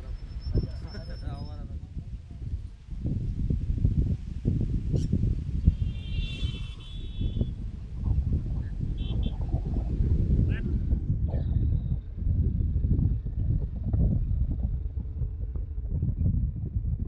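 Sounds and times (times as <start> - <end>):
wind gusting on microphone: 0.0 - 17.0.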